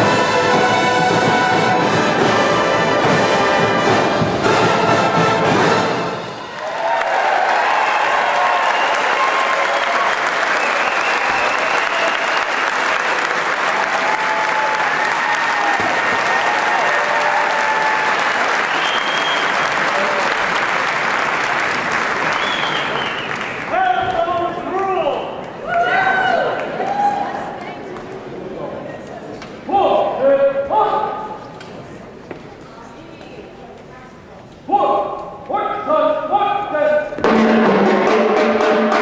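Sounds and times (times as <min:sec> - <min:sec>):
brass music: 0:00.0 - 0:06.5, 0:37.2 - 0:39.0
audience applauding and cheering: 0:06.1 - 0:28.0
shouts and whoops: 0:06.5 - 0:12.5, 0:13.8 - 0:18.4, 0:25.6 - 0:27.6.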